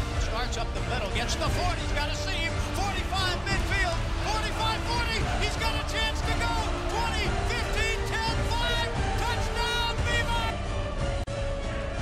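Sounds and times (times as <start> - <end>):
background music: 0.0 - 12.0
sports announcer calling play: 0.2 - 10.6.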